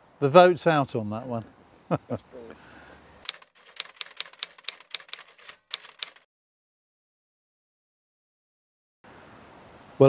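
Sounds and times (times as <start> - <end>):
typewriter key clacks: 3.3 - 6.2.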